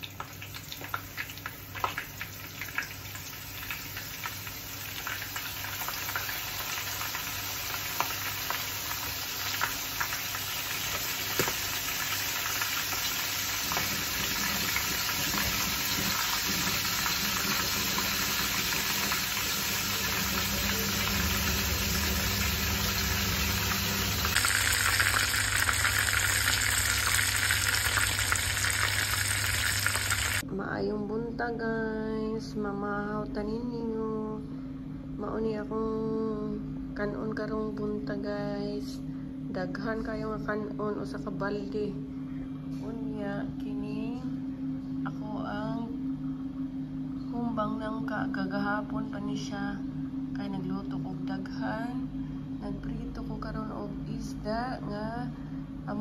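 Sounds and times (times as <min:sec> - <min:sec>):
fish sizzling in hot oil: 0:00.0 - 0:30.4.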